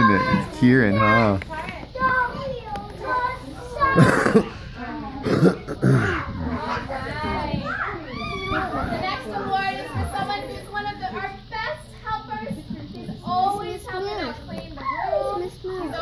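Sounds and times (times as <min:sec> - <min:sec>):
children talking and playing: 0:00.0 - 0:16.0
rough vocal outbursts: 0:04.0 - 0:07.8.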